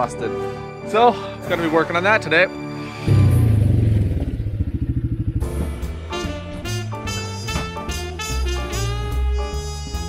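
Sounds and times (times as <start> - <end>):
quad engine driving past: 3.1 - 6.3.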